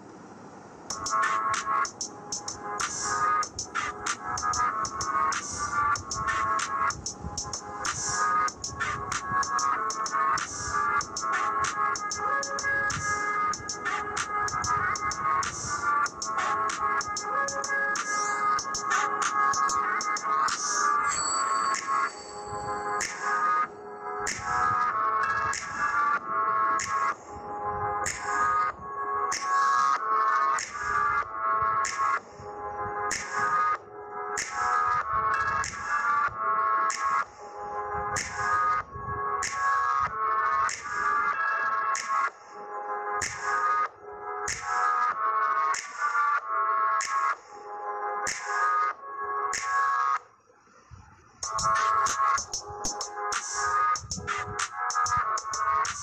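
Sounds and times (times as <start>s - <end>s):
instrumental music with steady beat: 0.9s - 27.3s, 29.3s - 32.4s, 33.0s - 38.8s, 39.4s - 42.5s, 43.1s - 47.6s, 48.2s - 50.2s, 51.4s - 56.0s.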